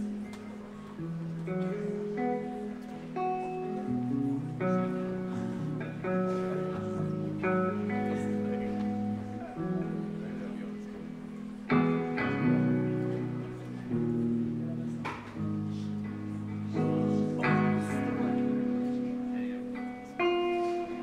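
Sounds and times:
guitar chords strummed: 0.0 - 21.0.

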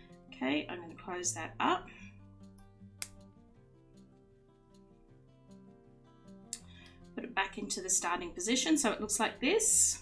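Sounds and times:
quiet instrumental music: 0.0 - 10.0.

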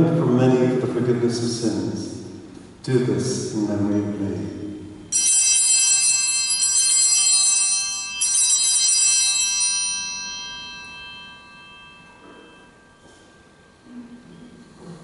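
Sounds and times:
small bells ringing: 5.1 - 14.7.

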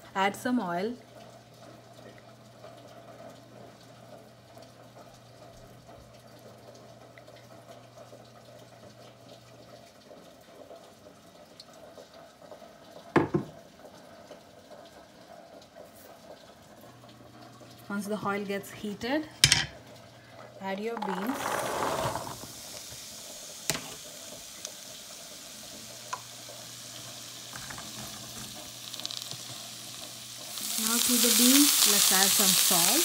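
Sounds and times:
oil trickling into pan: 19.7 - 33.0.

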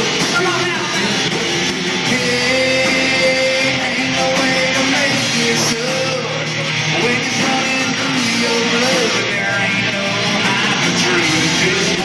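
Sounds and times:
country-rock band playing: 0.0 - 12.0.

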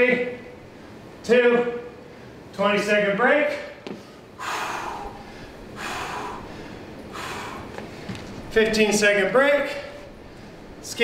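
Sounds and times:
person breathing hard: 4.0 - 8.3.

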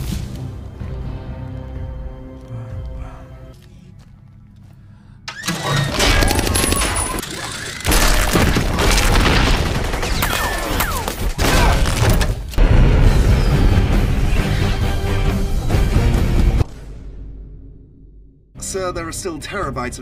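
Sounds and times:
action film music: 0.0 - 20.0.

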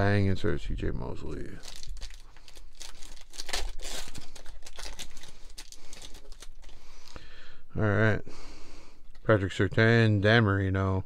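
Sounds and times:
foil wrapper tearing and crinkling: 1.6 - 7.2.

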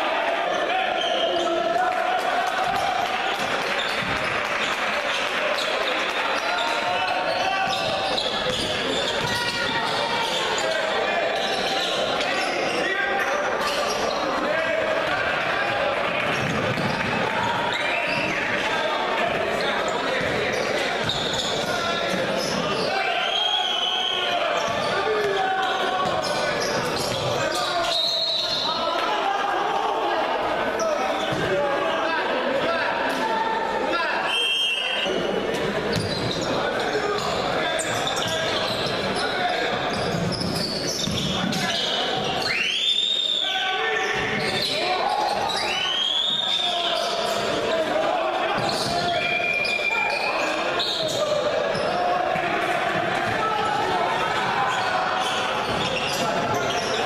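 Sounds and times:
echoing voices and crowd: 0.0 - 57.0.

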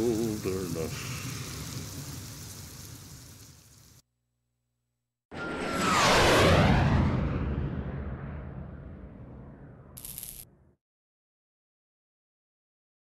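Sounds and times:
steady hiss: 0.0 - 4.0
cinematic whoosh with deep boom: 5.4 - 10.0.

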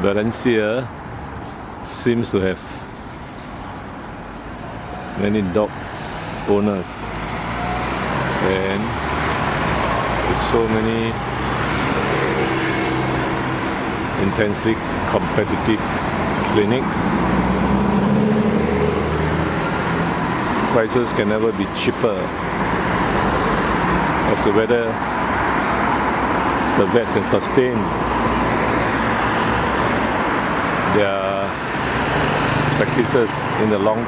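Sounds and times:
cars passing on busy street: 0.0 - 34.0
traffic noise: 0.0 - 34.0
car driving past: 5.8 - 10.6, 11.2 - 14.0, 17.1 - 20.7.

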